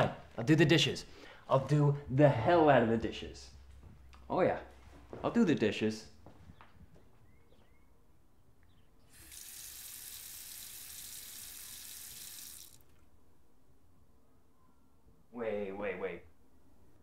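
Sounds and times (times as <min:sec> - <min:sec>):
water running into sink: 0:09.1 - 0:12.8.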